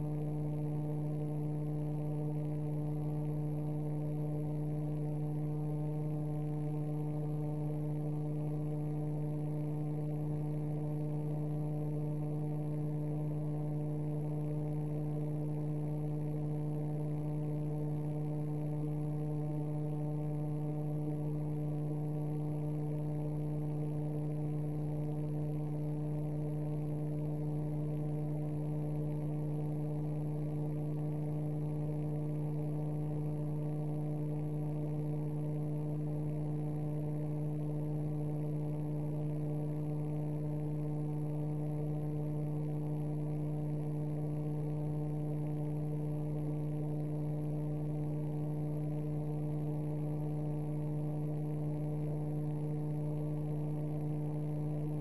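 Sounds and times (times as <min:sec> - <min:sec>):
steady electrical hum: 0:00.0 - 0:55.0.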